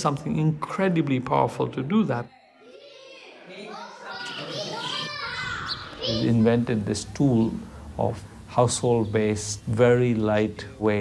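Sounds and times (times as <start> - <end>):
children chattering and calling: 0.0 - 8.0.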